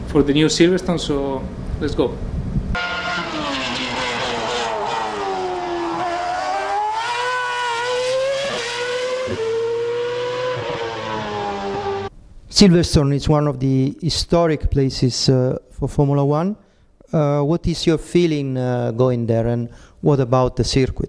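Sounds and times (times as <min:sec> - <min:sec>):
racing car engine at high revs: 0:02.8 - 0:12.1.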